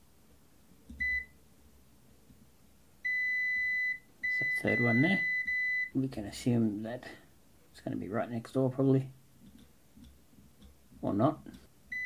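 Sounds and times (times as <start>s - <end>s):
multimeter continuity beep: 1.0s - 1.4s, 3.0s - 6.0s.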